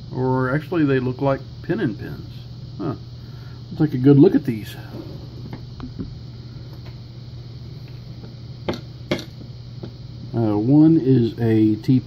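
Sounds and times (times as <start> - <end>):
low hum: 1.4 - 10.3.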